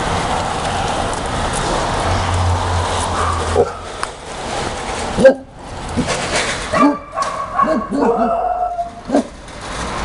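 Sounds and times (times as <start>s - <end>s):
dog barking: 6.7s - 9.3s.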